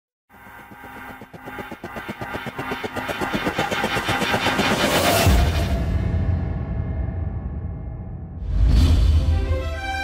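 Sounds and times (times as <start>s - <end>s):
rapid pulses into rising swell: 0.3s - 6.1s.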